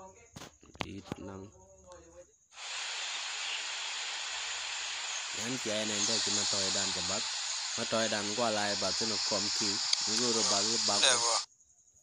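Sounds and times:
man speaking: 0:00.8 - 0:01.5, 0:05.3 - 0:11.5
steady hiss: 0:02.6 - 0:11.5.

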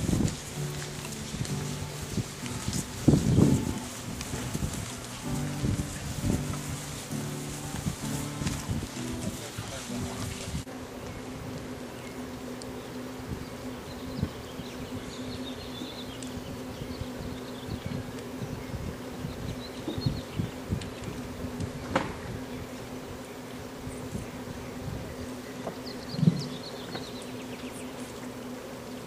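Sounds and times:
low hum: 0:00.0 - 0:28.4.

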